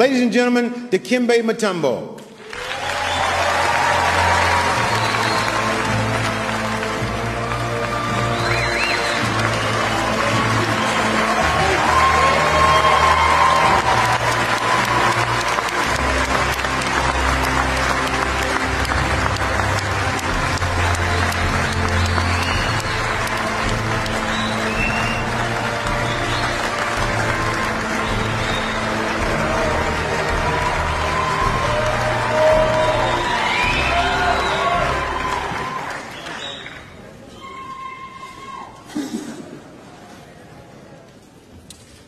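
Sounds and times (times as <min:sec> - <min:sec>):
audience applauding: 0:02.4 - 0:38.5.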